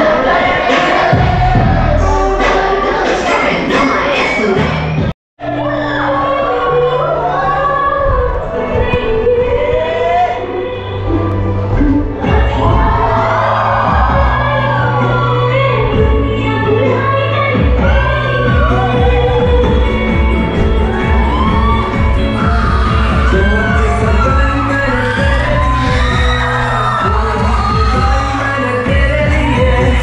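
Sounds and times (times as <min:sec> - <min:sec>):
dance music with singing: 0:00.0 - 0:30.0.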